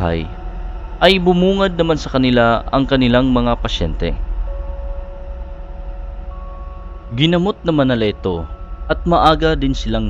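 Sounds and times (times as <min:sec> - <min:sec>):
higher held tone: 0:00.0 - 0:10.0
low ambient drone: 0:00.0 - 0:10.0.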